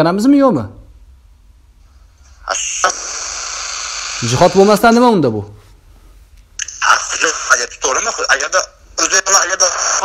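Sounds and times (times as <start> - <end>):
phone call hiss: 2.2 - 5.0.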